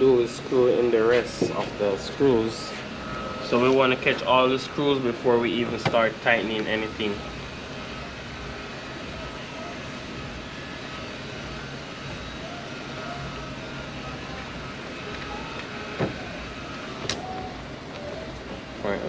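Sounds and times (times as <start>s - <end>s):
repair shop hum: 0.0s - 19.0s.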